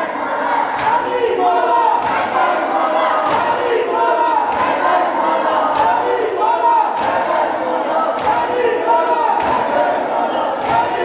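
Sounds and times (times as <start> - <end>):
crowd chanting loudly: 0.0 - 11.0
hands slapping chests: 0.7 - 1.1, 2.0 - 2.4, 3.2 - 3.6, 4.5 - 5.0, 5.6 - 6.1, 6.9 - 7.4, 8.2 - 8.6, 9.4 - 9.8, 10.6 - 11.0.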